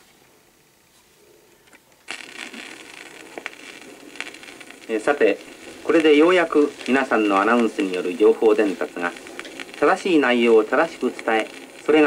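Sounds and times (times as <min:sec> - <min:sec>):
record surface hiss: 0:00.0 - 0:12.0
record clicks and pops: 0:01.5 - 0:12.0.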